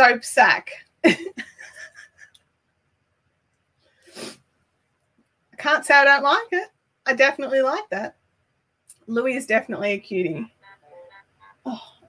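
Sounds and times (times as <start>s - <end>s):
woman laughing softly: 1.2s - 2.4s
breathy sniff: 3.8s - 4.4s.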